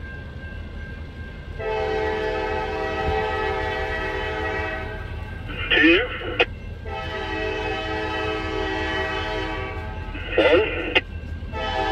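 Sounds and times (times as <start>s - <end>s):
locomotive air horn blast: 1.6s - 11.9s.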